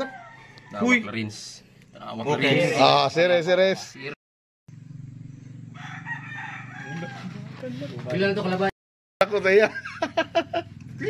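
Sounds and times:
rooster crowing: 0:00.0 - 0:01.3, 0:05.5 - 0:07.6
steady low hum: 0:04.7 - 0:06.7.

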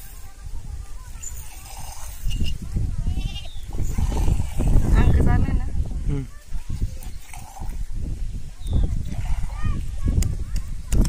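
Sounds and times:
hand milking into a cup: 0:01.1 - 0:05.2, 0:06.4 - 0:11.0
goat bleating: 0:03.0 - 0:03.7.

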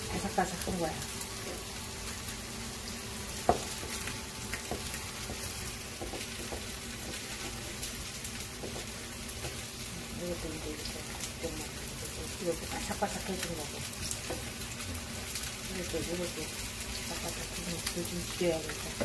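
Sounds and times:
pancakes sizzling in oil: 0:00.0 - 0:19.0.

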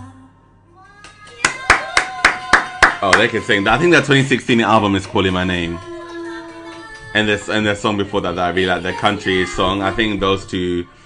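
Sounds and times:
hands clapping: 0:01.0 - 0:08.2.

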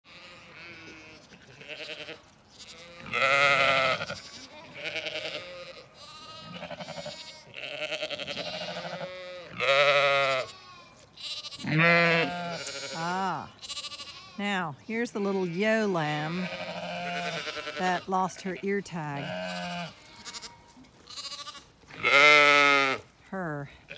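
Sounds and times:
sheep bleating: 0:00.0 - 0:23.9.

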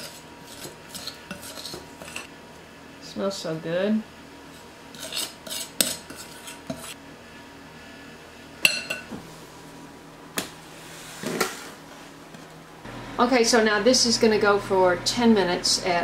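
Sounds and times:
kitchenware clattering: 0:08.6 - 0:09.2.

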